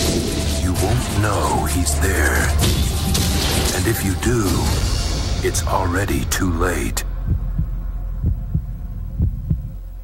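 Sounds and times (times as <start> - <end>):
low drone: 0.0 - 10.0
heartbeat thumps: 7.1 - 10.0.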